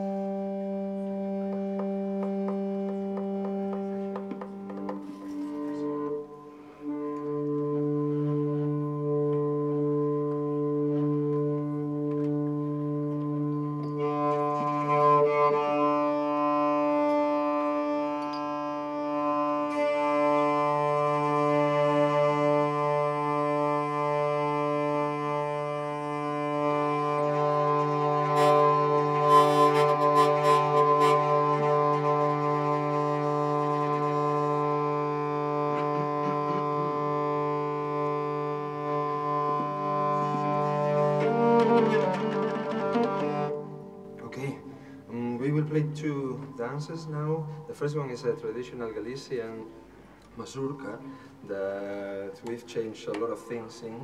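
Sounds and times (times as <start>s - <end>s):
hurdy-gurdy drone and melody: 0.0s - 47.6s.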